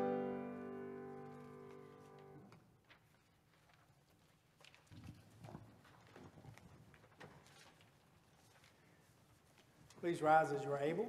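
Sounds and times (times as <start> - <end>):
faint irregular footsteps: 1.1 - 10.4.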